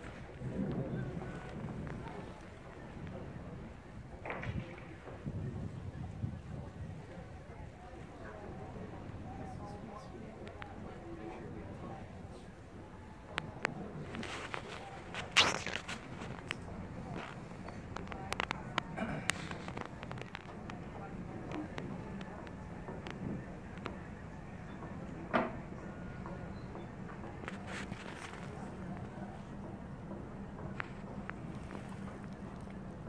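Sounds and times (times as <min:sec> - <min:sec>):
indistinct background voices: 0:00.0 - 0:33.0.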